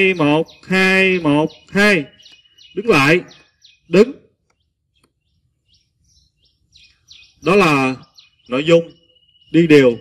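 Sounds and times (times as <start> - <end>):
small bird chirping: 0.0 - 10.0.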